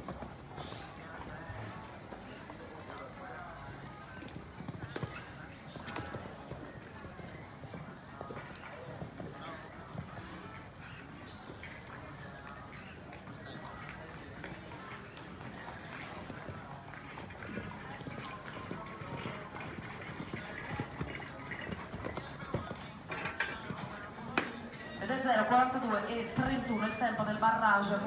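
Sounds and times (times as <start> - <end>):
horse hoofbeats on sand: 14.8 - 26.7.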